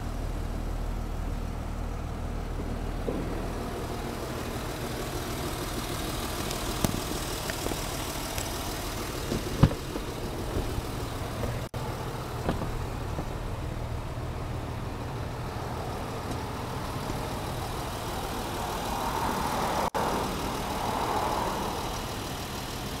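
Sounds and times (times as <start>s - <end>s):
vehicle engine idling: 0.0s - 23.0s
rushing noise: 15.5s - 22.6s.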